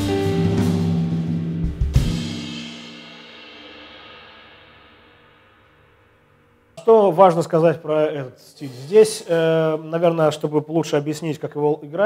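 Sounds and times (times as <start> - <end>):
cymbals and drums ringing: 0.0 - 6.2.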